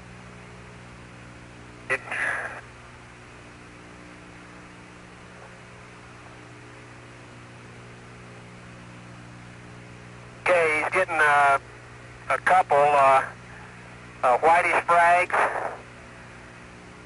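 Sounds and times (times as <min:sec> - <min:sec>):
low steady hum: 0:00.0 - 0:17.0
man speaking over radio: 0:01.9 - 0:02.6, 0:10.4 - 0:11.6, 0:12.2 - 0:13.4, 0:14.2 - 0:15.9
radio hiss: 0:01.9 - 0:02.7, 0:10.4 - 0:16.4.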